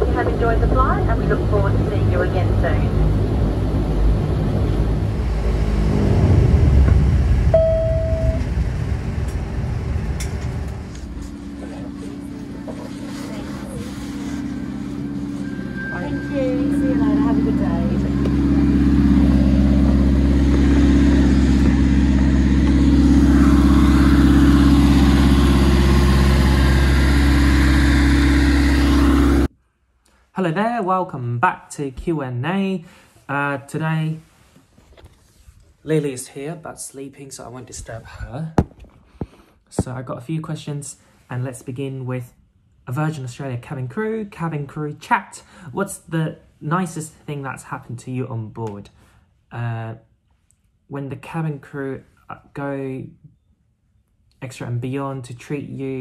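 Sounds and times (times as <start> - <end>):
turboprop engine drone: 0.0 - 29.5
single tone: 7.5 - 8.6, 15.0 - 19.0.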